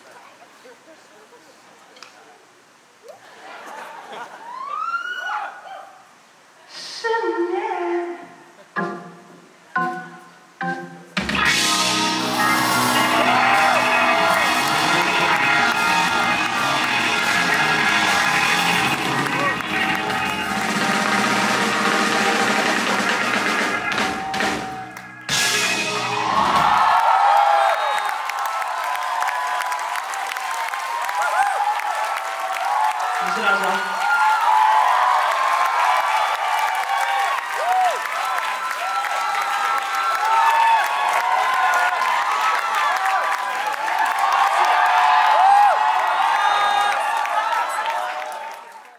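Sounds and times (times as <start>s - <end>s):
audience cheering: 3.3s - 5.9s, 11.3s - 48.9s
rock band playing: 9.8s - 27.2s
band hits: 14.4s - 26.8s.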